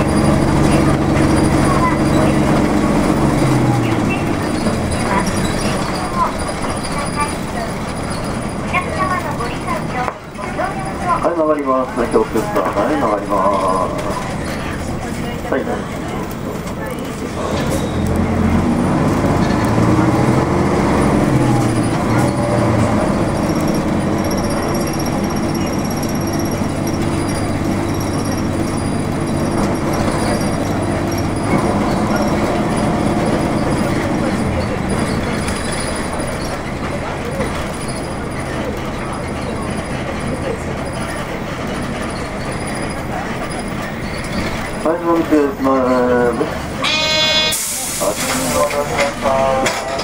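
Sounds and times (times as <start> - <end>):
bus diesel engine revving: 0.0 - 50.0.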